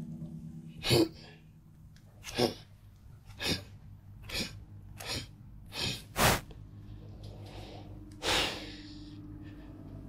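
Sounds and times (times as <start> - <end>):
faint low hum: 0.0 - 10.0
man's sharp nasal breaths: 3.3 - 6.5.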